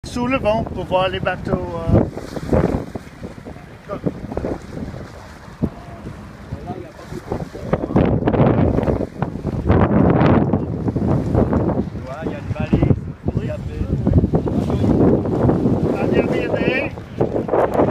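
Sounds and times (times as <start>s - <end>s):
choppy water around boat: 0.0s - 17.9s
wind buffeting microphone: 0.0s - 17.9s.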